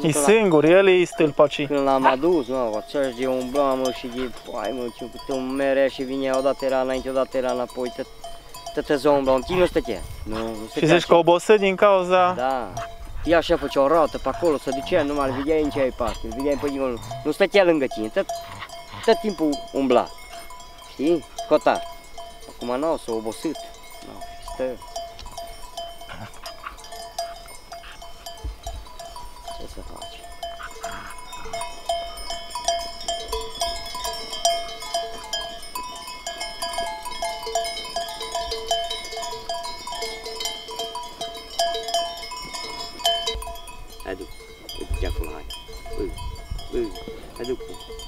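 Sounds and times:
sheep bells clinking: 0.0s - 48.0s.

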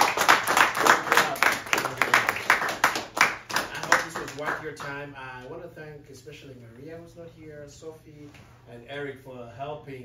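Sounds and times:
audience applause: 0.0s - 4.6s.

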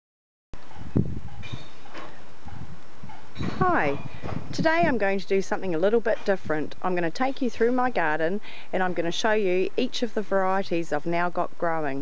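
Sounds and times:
steady low rumble: 0.6s - 12.0s.

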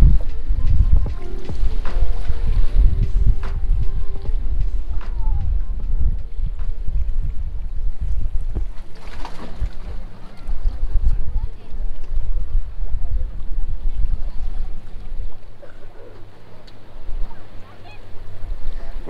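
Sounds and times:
background music: 0.0s - 8.8s
wind buffeting microphone: 0.0s - 19.0s.

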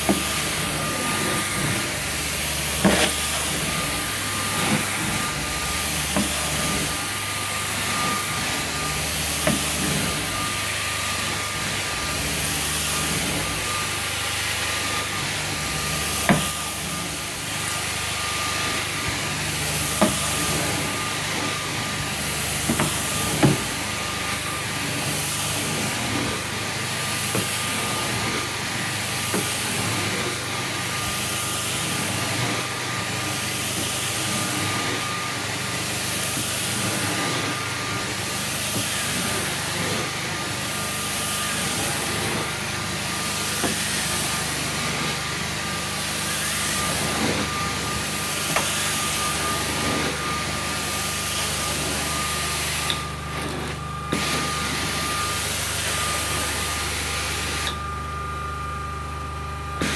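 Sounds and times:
carpet extraction wand hissing: 0.0s - 57.8s.

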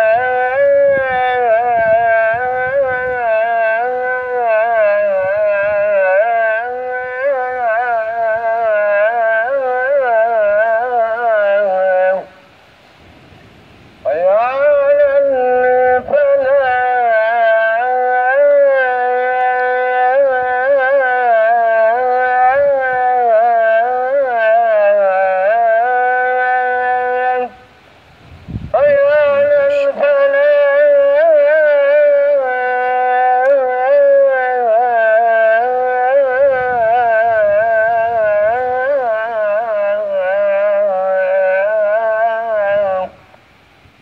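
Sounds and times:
man chanting call to prayer: 0.0s - 12.4s, 14.0s - 27.7s, 28.7s - 43.3s.

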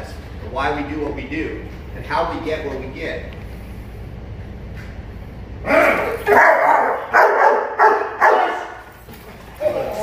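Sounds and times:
dog barking loudly: 6.3s - 8.8s.

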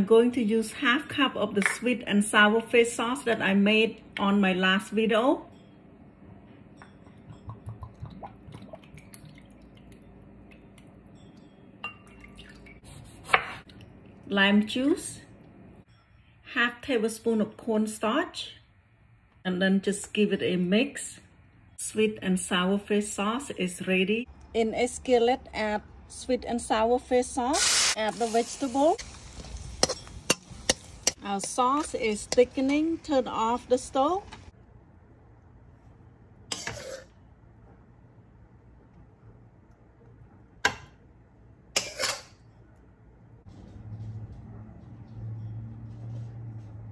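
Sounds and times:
sauce dripping and glugging: 7.5s - 12.8s.

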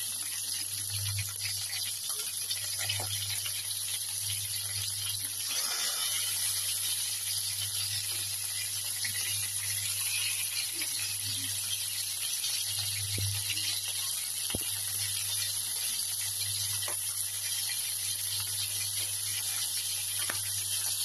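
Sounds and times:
chicken sizzling in hot oil: 0.0s - 21.0s.

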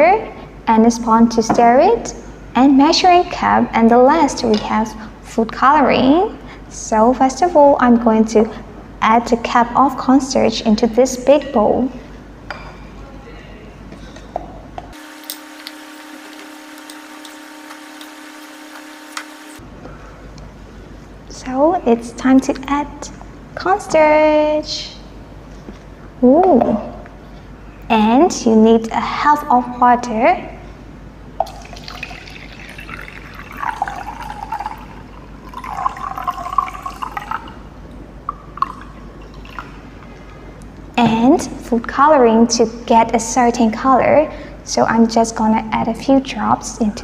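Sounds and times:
faint hum: 0.0s - 47.0s
water pouring into plastic cup: 31.4s - 37.6s, 38.5s - 39.8s.

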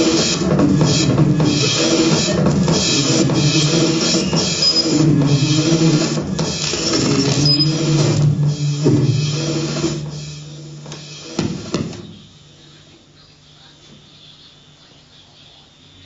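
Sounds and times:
clattering percussion: 0.0s - 12.0s
low sustained drone: 6.8s - 11.3s.

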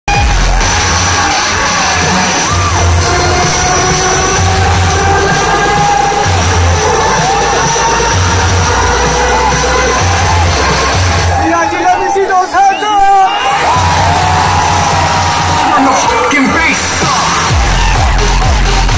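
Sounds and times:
crowd cheering and shouting: 0.0s - 18.9s
loud live music with heavy bass: 0.0s - 18.9s.

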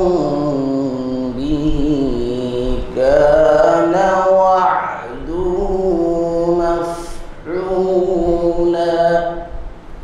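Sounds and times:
man chanting melodically: 0.0s - 9.8s.

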